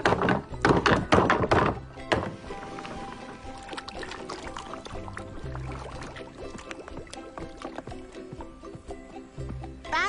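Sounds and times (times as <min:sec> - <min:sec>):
wooden knocks and thuds: 0:00.0 - 0:02.5
background music: 0:00.0 - 0:10.0.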